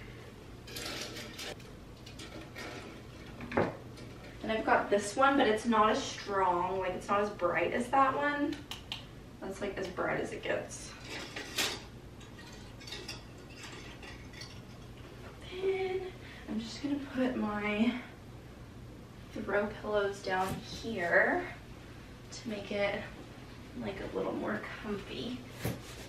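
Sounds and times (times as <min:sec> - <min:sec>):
low steady room hum: 0:00.0 - 0:26.0
rustling of lights: 0:00.6 - 0:04.6, 0:10.9 - 0:15.4.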